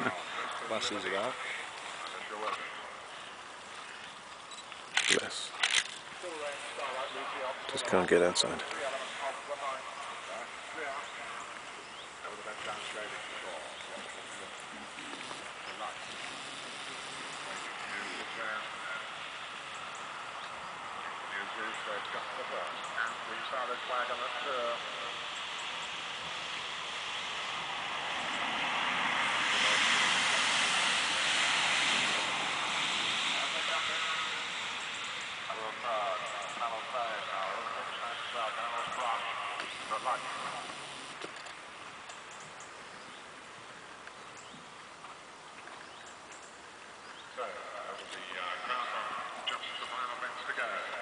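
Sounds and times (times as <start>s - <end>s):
faint voices: 0.0s - 27.0s, 29.2s - 41.4s, 47.3s - 51.0s
broad rushing noise: 0.0s - 42.1s.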